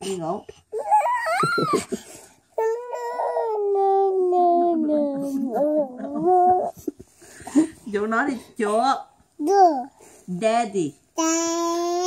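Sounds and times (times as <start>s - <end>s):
toddler whining cry: 0.7s - 1.9s, 2.6s - 4.8s.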